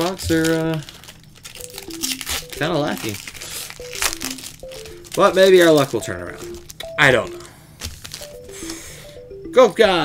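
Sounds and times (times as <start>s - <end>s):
foil wrapper crinkling and tearing: 0.0s - 6.8s, 7.8s - 8.4s
background music falling notes: 0.2s - 10.0s.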